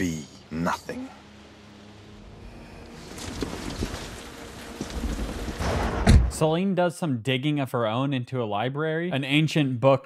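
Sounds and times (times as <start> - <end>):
rain on car roof: 3.0 - 5.7.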